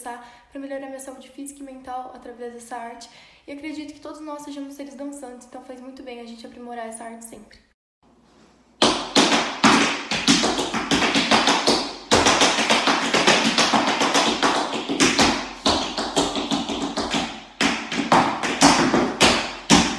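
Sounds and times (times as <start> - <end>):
tap shoes on a tap board: 8.8 - 19.9.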